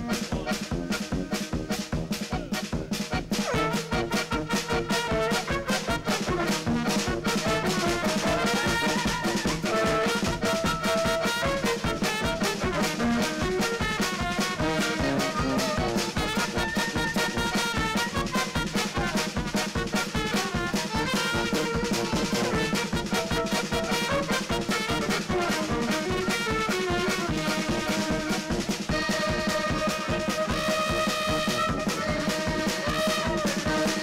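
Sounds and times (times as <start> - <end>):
klezmer band playing: 0.0 - 34.0.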